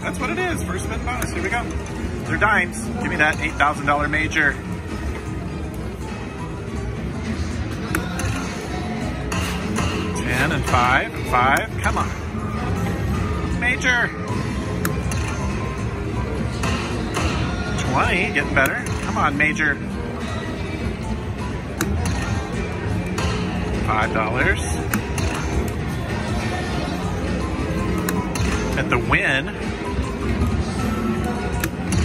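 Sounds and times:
slot machine music and effects: 0.0s - 32.0s.

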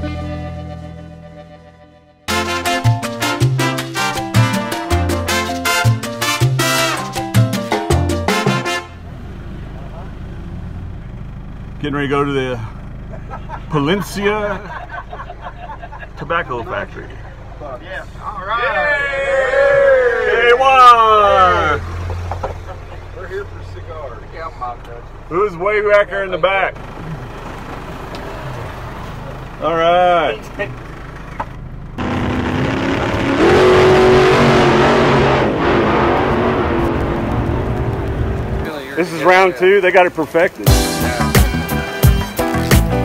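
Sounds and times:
minibus engine hum: 0.0s - 43.0s
van rumble from inside: 0.0s - 43.0s.

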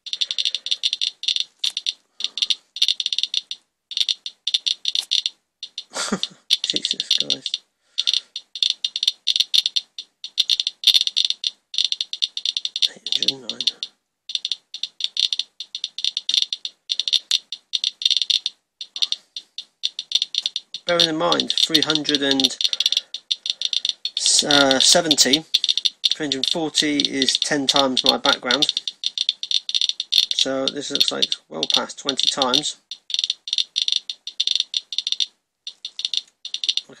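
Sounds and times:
geiger counter clicking rapidly: 0.0s - 37.0s.

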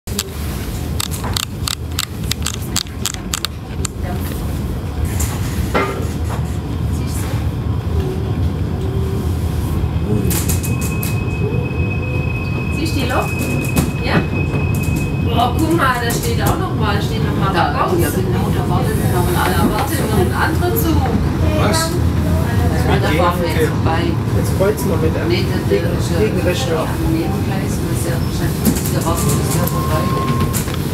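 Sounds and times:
train wheels rumbling on track: 0.1s - 30.9s.

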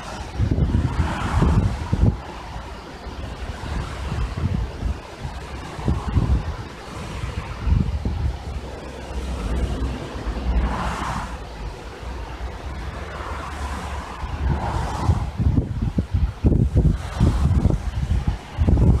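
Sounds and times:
wind buffeting microphone: 0.0s - 19.0s
wind through grass and trees: 0.0s - 19.0s.

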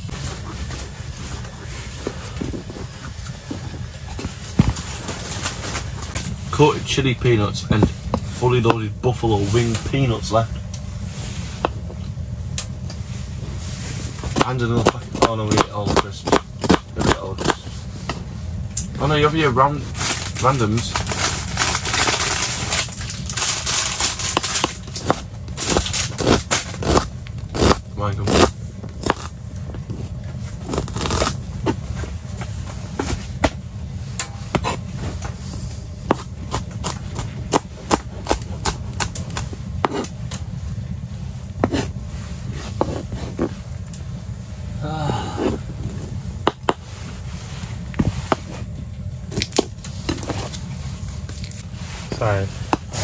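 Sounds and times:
steady low rumble: 0.0s - 53.0s
knife chopping on plastic board: 14.4s - 17.6s, 36.1s - 40.1s.

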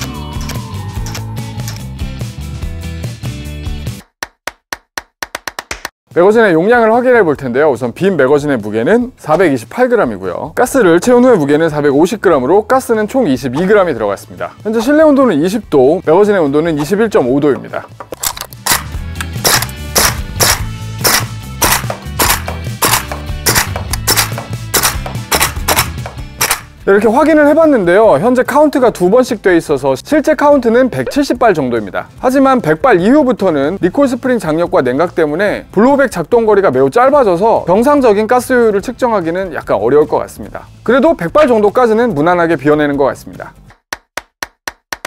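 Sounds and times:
background music: 0.0s - 4.1s, 6.1s - 43.8s
sharp dry clicks: 18.1s - 26.7s
airsoft rifle firing: 18.7s - 26.7s.

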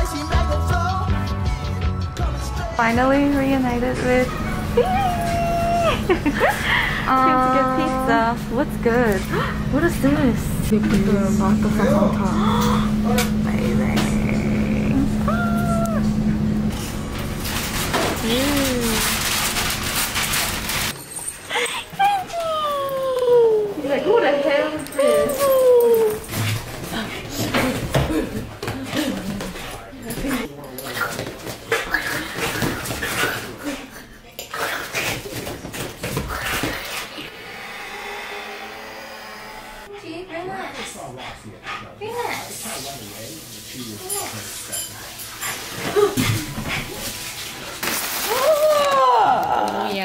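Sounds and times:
machine hum: 3.2s - 20.9s, 36.7s - 40.0s
dog whining: 4.2s - 6.5s, 14.1s - 16.3s, 21.5s - 23.8s, 24.9s - 26.4s
steady tone: 37.2s - 40.0s.

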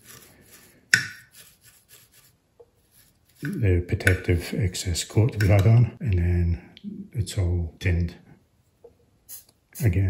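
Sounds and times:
scratchy rubbing on wire wool: 0.0s - 3.6s.

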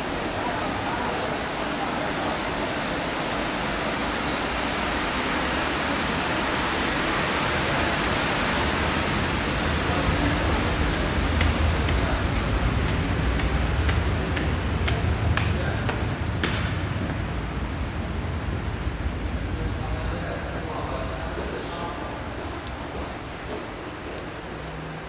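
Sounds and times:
underground passageway hiss and rumble: 0.0s - 25.0s.

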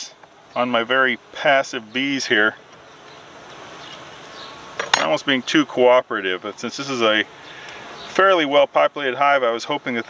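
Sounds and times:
low steady outdoor hiss: 0.0s - 10.0s
metal tool clinking on hive: 4.8s - 5.2s.

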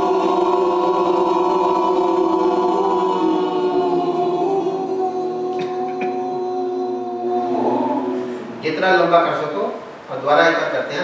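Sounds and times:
man chanting long tone: 1.8s - 9.8s.

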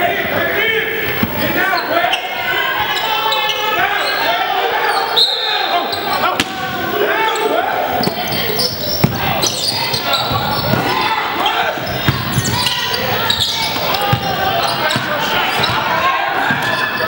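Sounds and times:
voices calling out: 0.0s - 17.0s
basketball bouncing on hardwood: 12.0s - 12.6s.

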